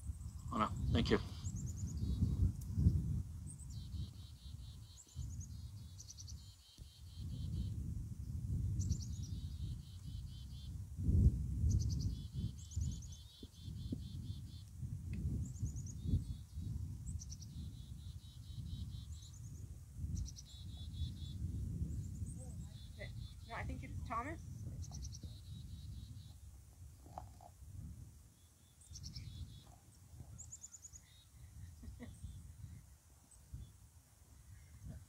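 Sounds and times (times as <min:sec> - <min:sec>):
wind buffeting microphone: 0:00.0 - 0:06.4, 0:07.0 - 0:33.8, 0:34.4 - 0:35.0
songbird singing with trill: 0:00.0 - 0:27.5, 0:28.3 - 0:33.8.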